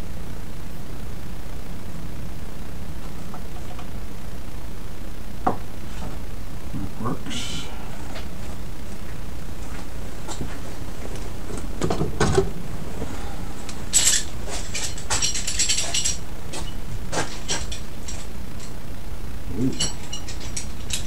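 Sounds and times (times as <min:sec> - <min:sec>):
low background hum: 0:00.0 - 0:21.0
metal tools clinking: 0:13.9 - 0:18.8, 0:19.7 - 0:21.0.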